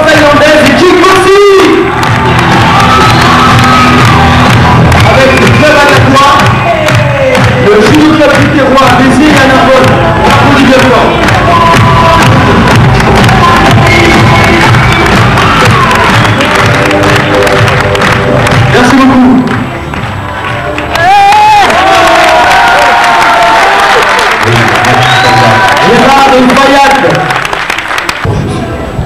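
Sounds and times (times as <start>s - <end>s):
crowd cheering: 0.0s - 29.0s
loud music: 0.0s - 29.0s.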